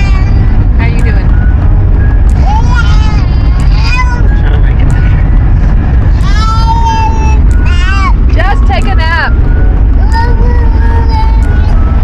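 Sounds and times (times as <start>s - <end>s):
road and tyre rumble: 0.0s - 12.0s.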